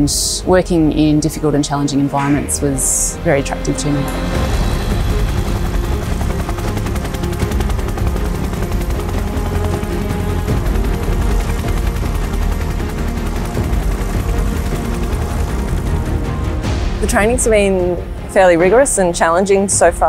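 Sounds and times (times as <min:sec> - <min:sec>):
background music: 0:00.0 - 0:20.0
helicopter rotor blades chopping: 0:00.1 - 0:20.0.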